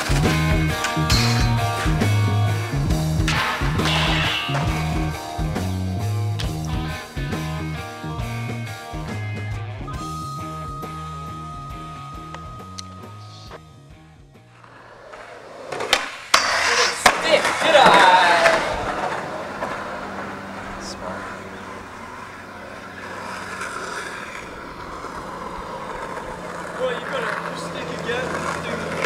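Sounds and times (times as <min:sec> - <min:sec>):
skateboard clacks: 0:00.0 - 0:02.6, 0:14.6 - 0:29.0
skateboard wheels rolling on concrete: 0:00.0 - 0:29.0
loud voices: 0:16.9 - 0:22.8.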